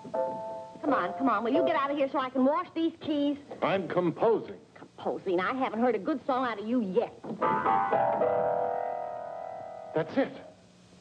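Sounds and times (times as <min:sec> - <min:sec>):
piano chord ringing: 0:00.0 - 0:02.2, 0:07.4 - 0:10.5.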